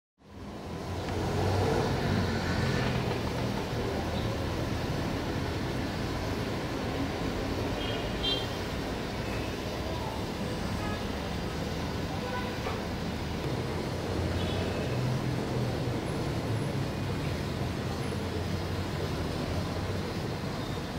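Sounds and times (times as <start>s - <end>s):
distant road traffic rumble: 0.2s - 20.9s.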